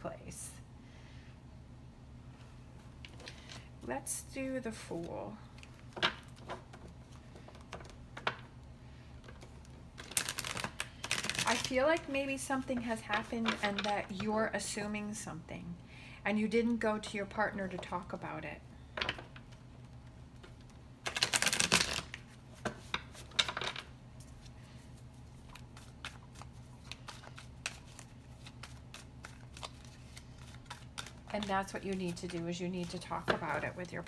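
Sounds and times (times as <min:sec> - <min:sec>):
cards being shuffled: 0:09.2 - 0:12.1, 0:19.8 - 0:24.5, 0:25.2 - 0:33.9.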